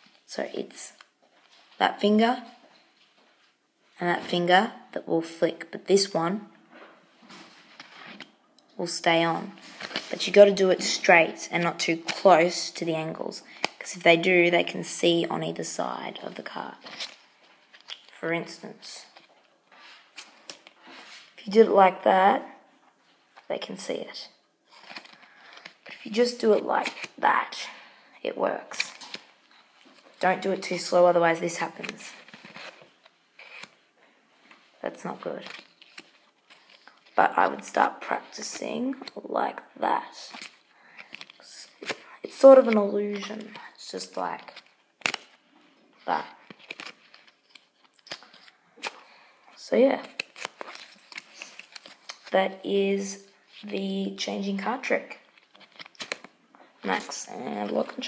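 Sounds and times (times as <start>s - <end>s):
playing cards handled: 7.3s - 8.4s, 9.6s - 11.0s, 12.0s - 12.9s, 15.8s - 21.3s, 24.7s - 27.3s, 28.7s - 33.8s, 34.4s - 39.2s, 40.3s - 45.4s, 46.1s - 52.4s, 55.1s - 58.0s
playing card clicking and snapping: 44.5s - 45.4s, 55.4s - 56.3s.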